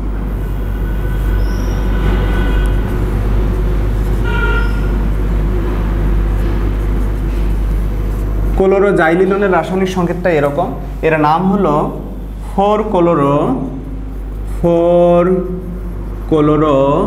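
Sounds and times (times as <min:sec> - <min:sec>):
steady low rumble: 0:00.0 - 0:17.0
marker squeak: 0:00.6 - 0:03.2, 0:04.1 - 0:05.1
marker stroking on whiteboard: 0:00.6 - 0:11.0.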